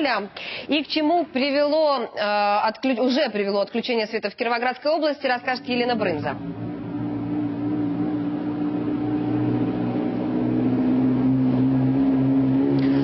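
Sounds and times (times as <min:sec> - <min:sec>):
low engine-like drone: 0:05.5 - 0:13.0.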